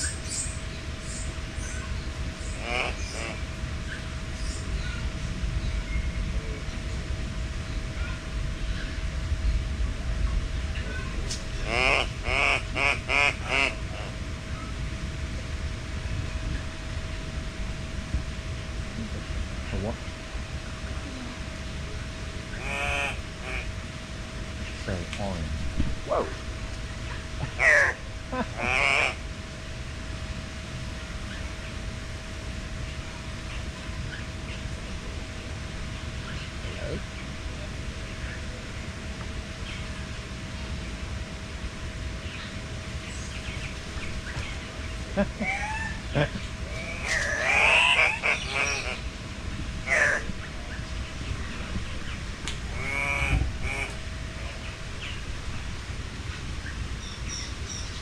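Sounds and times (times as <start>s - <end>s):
loud harsh bird calls: 0.0s - 5.1s, 11.6s - 14.2s, 22.5s - 23.8s, 27.4s - 29.2s, 43.1s - 49.1s, 49.8s - 50.8s, 52.0s - 55.2s
steady low hum: 0.0s - 58.0s.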